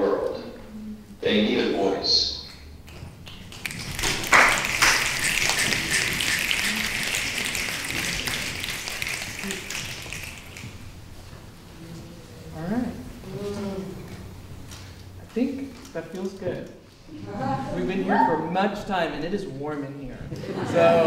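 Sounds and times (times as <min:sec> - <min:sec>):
audience applauding: 0:02.8 - 0:10.9.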